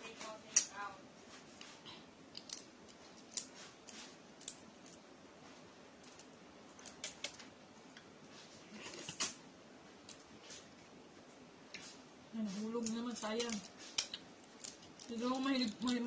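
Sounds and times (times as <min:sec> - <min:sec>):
fingers chipping eggshell: 0:02.2 - 0:05.1, 0:06.0 - 0:08.1, 0:12.5 - 0:16.0.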